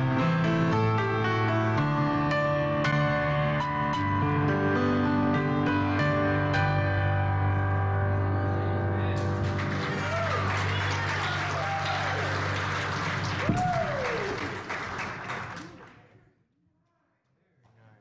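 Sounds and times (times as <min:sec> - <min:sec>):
crowd applauding: 0:09.2 - 0:16.1
whoops and cheers: 0:10.0 - 0:12.6, 0:13.3 - 0:14.7.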